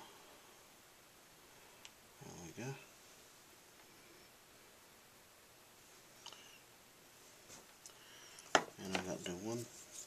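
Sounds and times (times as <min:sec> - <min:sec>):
man speaking: 0:02.2 - 0:02.9, 0:08.8 - 0:09.8.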